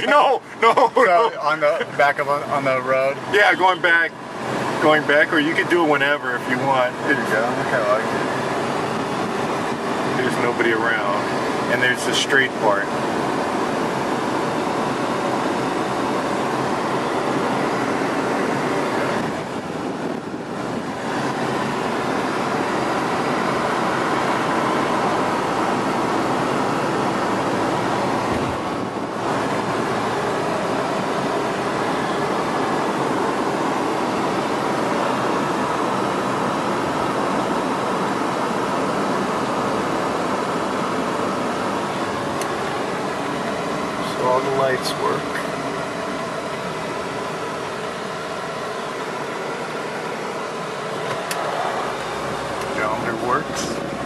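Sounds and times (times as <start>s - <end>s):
car engine running: 0.0s - 54.0s
wind and road noise in car cabin: 0.0s - 54.0s.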